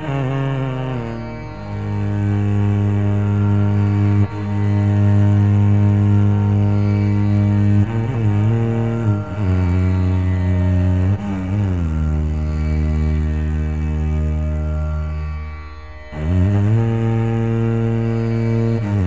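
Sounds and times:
double violin bowing: 0.0 - 19.0.

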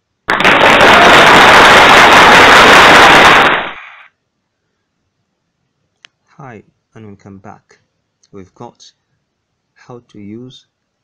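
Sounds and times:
dense crackling noise burst: 0.0 - 4.2.

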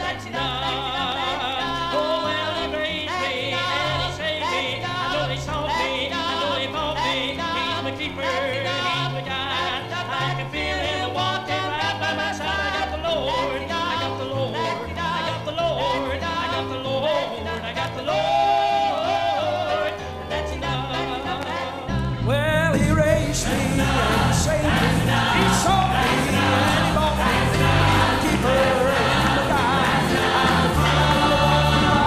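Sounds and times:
moving bass accompaniment: 0.0 - 32.0.

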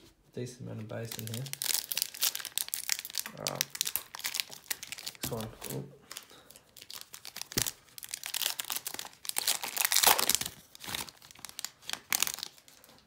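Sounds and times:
wrapper crinkling and tearing: 1.0 - 13.0.

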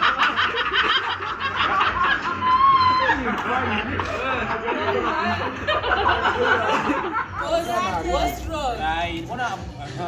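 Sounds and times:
people laughing: 0.0 - 8.4.

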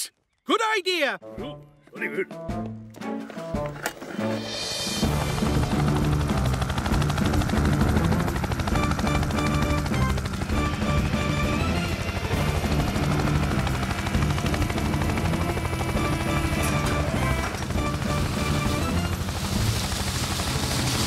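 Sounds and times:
background music: 0.5 - 21.0
cartoon helicopter rotor chopping: 4.2 - 21.0.

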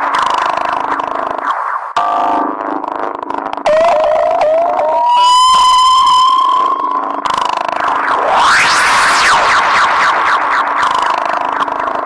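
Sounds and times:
siren-like synthesizer tone: 3.6 - 12.0
synthesizer rising glides: 5.2 - 12.0.

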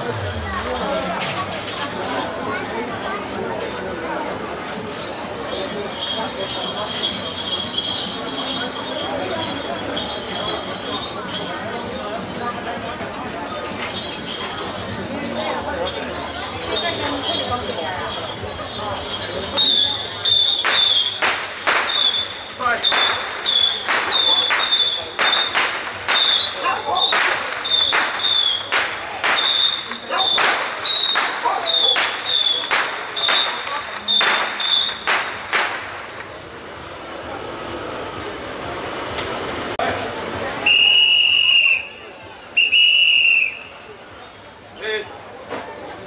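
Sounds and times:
long whistle blasts: 40.6 - 42.0, 42.6 - 43.8.

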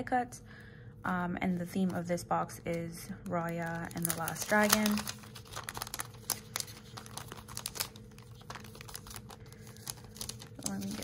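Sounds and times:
cellophane sleeve crinkling: 2.7 - 11.0.

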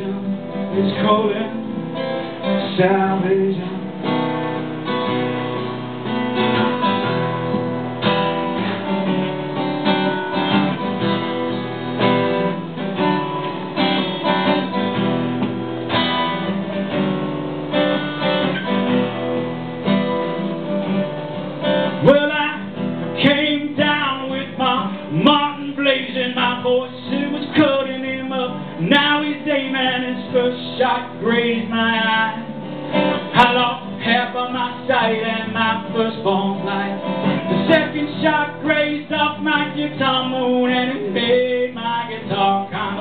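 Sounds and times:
acoustic guitar strumming: 0.0 - 43.0.

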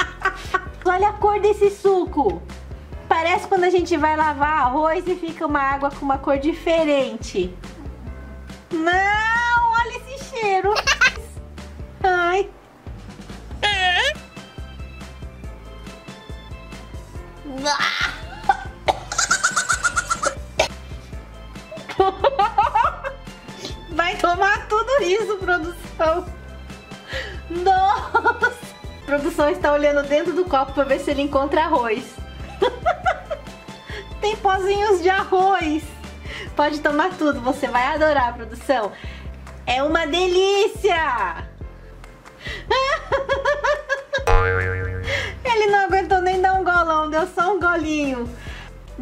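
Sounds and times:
background music: 0.0 - 49.0
wobbling pitched phrase: 44.3 - 45.3
steady buzzing tone: 44.3 - 45.4.

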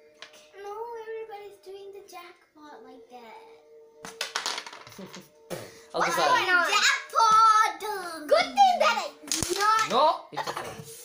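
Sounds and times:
child's wordless sing-song voice: 0.3 - 3.7, 6.0 - 9.9
carrom pieces clicking: 9.3 - 10.0.

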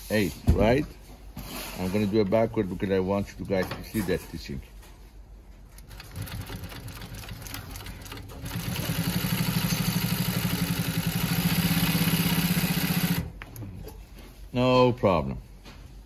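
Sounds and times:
sewing machine stitching: 5.8 - 13.3.

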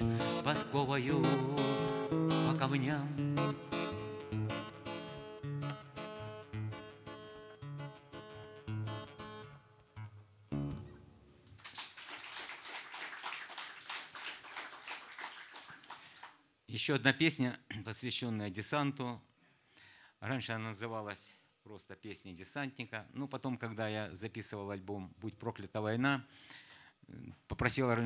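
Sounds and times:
acoustic guitar playing: 0.0 - 11.5
audience clapping: 11.5 - 16.4.

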